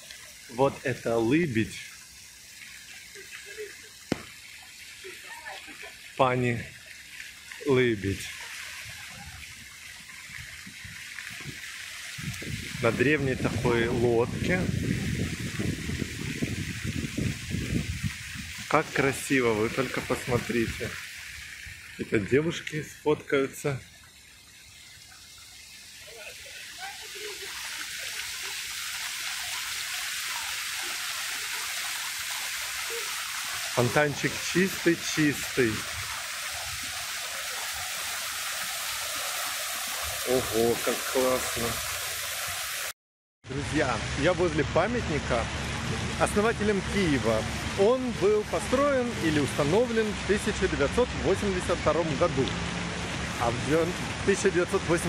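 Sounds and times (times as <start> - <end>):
fountain water splashing: 0.0 - 42.9, 43.5 - 55.0
wind buffeting microphone: 12.2 - 18.8.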